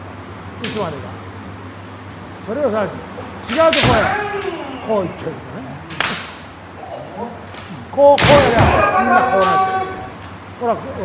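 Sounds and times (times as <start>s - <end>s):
bamboo sword striking crack: 3.6s - 4.2s, 5.9s - 6.4s.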